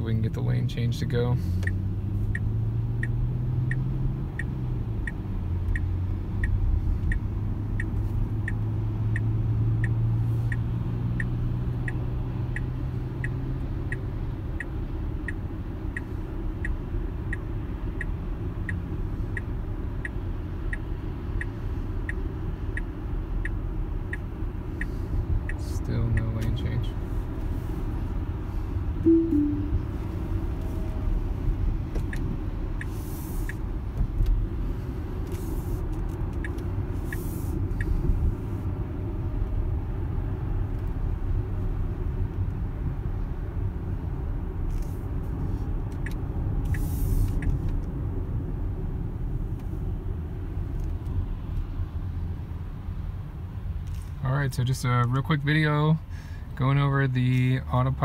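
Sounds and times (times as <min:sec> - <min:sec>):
road and tyre rumble: 0:00.0 - 0:58.0
turn signal ticking: 0:00.0 - 0:58.0.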